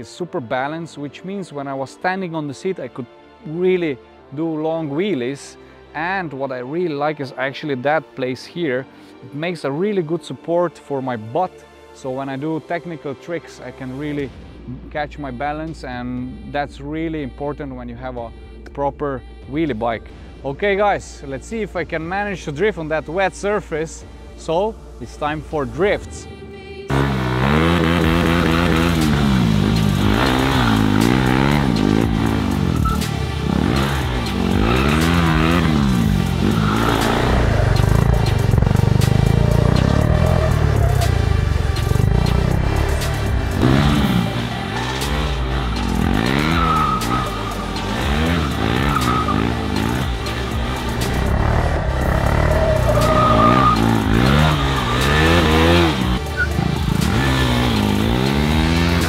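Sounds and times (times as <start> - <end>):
motorcycle engine revving: 26.9 - 59.0
tyre squeal: 45.8 - 50.0, 51.8 - 57.3.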